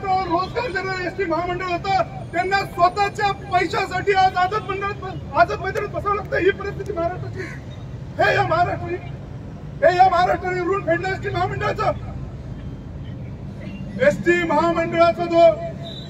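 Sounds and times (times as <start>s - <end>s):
man speaking into a microphone: 0.0s - 9.2s, 9.8s - 12.2s, 14.0s - 15.9s.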